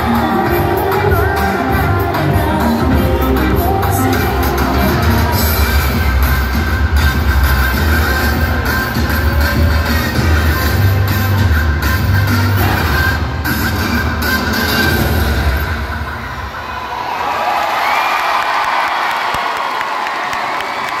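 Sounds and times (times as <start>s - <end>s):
dance music with heavy bass: 0.0s - 16.2s
crowd cheering and shouting: 0.0s - 21.0s.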